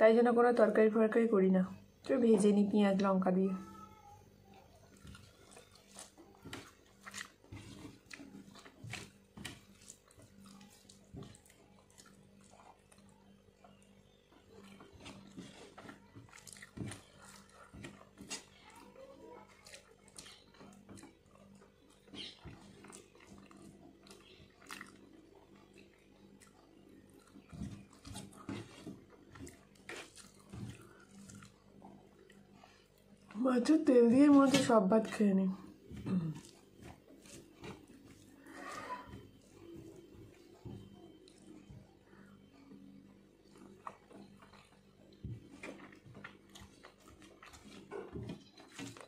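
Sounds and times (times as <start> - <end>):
chewing and lip-smacking: 4.5 - 33.4, 35.9 - 49.0
fingers mixing rice on steel plate: 4.9 - 25.0, 27.1 - 31.8
person murmuring: 36.0 - 36.4.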